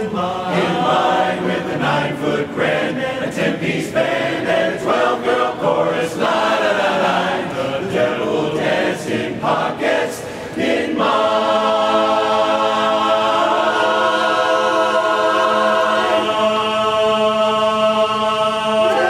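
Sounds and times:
men's chorus singing in harmony: 0:00.0 - 0:19.0.

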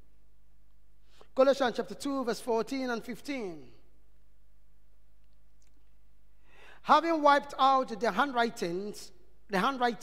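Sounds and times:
low electrical hum: 0:00.0 - 0:10.0
man reading aloud: 0:01.3 - 0:03.9, 0:06.8 - 0:10.0
quick breath in: 0:06.4 - 0:06.9.

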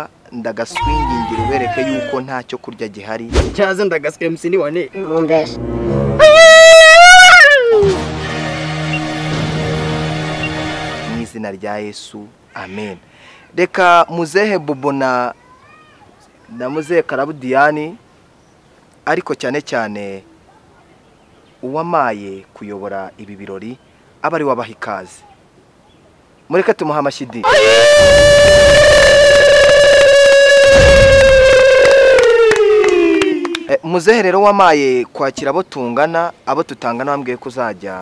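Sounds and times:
person crying out high: 0:00.7 - 0:02.3, 0:06.2 - 0:07.9, 0:27.4 - 0:33.7.

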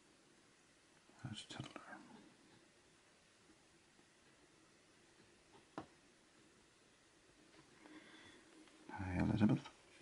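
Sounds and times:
soft whispered word: 0:01.1 - 0:02.4.

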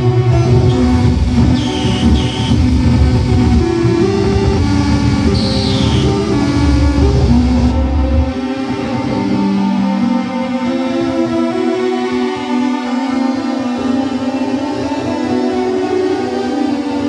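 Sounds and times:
sustained electronic tones: 0:00.0 - 0:11.3
loud low electronic drone: 0:00.0 - 0:17.0
high tone falling in pitch: 0:00.3 - 0:10.5
high whistling tones: 0:00.5 - 0:07.8.

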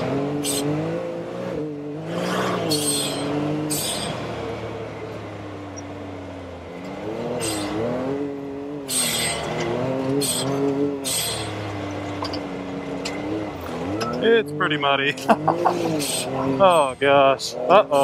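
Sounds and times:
engine revving: 0:00.0 - 0:18.0.

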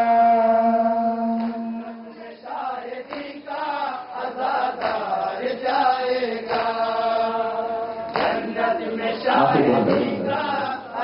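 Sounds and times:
man singing into microphone: 0:09.1 - 0:11.0.

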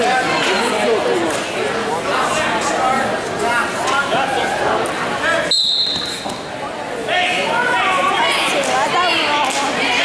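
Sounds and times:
crowd chatter echoing: 0:00.0 - 0:10.0
referee's whistle: 0:05.5 - 0:06.2.

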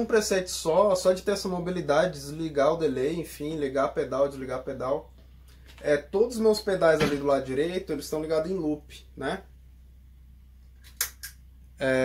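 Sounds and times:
low steady hum: 0:00.0 - 0:12.0
sharp click: 0:10.8 - 0:11.4.

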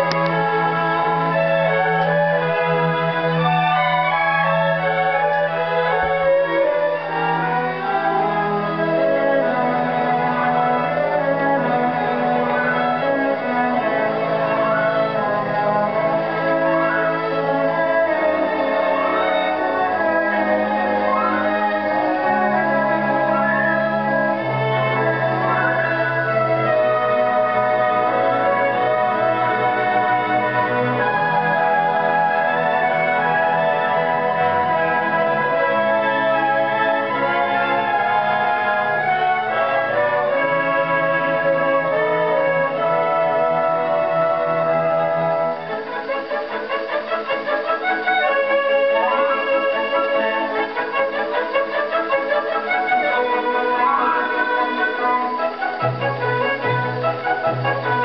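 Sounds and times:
orchestral music on gramophone: 0:00.0 - 0:58.0.

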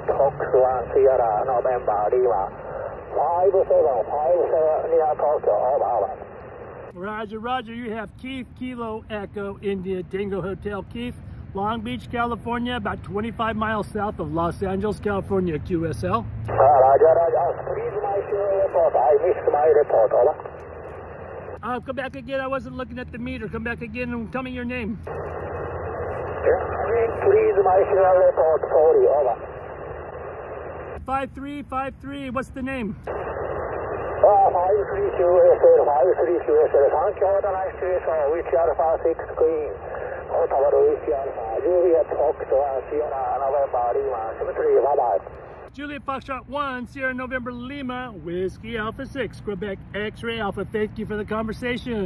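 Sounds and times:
narrow-band speech over radio: 0:00.0 - 0:06.3, 0:16.5 - 0:20.5, 0:25.1 - 0:29.5, 0:33.1 - 0:45.3
radio band noise: 0:00.0 - 0:07.2, 0:16.5 - 0:21.7, 0:23.4 - 0:31.2, 0:32.4 - 0:45.8.

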